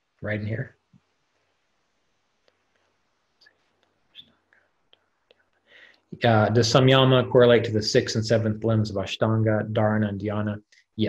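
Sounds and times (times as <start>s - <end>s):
soft breath: 4.5s - 6.1s.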